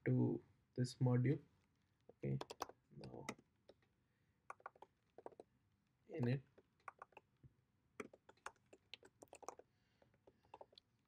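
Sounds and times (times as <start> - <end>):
typing on computer keyboard: 2.3 - 3.4, 4.5 - 5.4, 6.8 - 7.2, 8.0 - 9.6.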